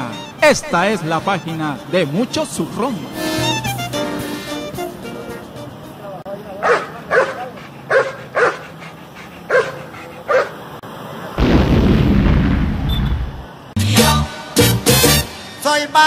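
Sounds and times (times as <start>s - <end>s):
faint street background: 0.0s - 16.0s
dog barking: 6.6s - 10.6s.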